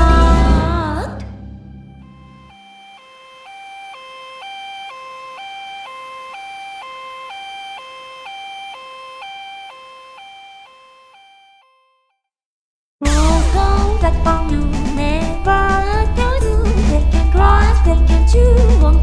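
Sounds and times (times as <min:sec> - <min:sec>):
two-tone emergency siren: 0:01.8 - 0:12.3.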